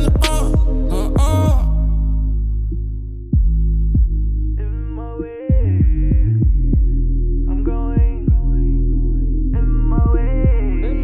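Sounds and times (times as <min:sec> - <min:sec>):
bass hits gliding down: 0:00.0 - 0:01.8, 0:03.3 - 0:04.7, 0:05.5 - 0:07.0
deep pulsing bass: 0:00.0 - 0:11.0
hip hop beat: 0:00.0 - 0:11.0.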